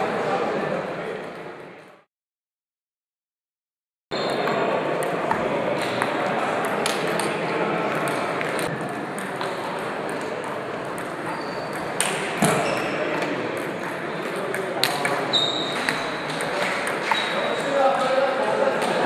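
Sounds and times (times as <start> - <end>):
murmur of voices: 0.0 - 2.1, 4.2 - 19.0
table tennis balls clicking: 4.5 - 12.6, 13.2 - 17.4.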